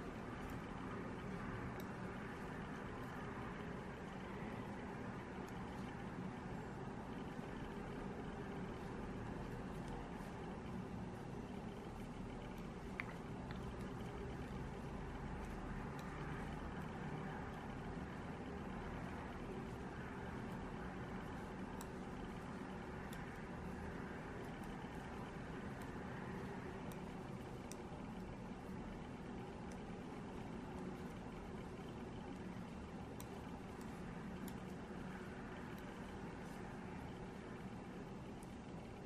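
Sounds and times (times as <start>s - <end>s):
knitting needles clicking: 0.0s - 6.6s, 7.2s - 39.0s
low background hum: 0.0s - 39.0s.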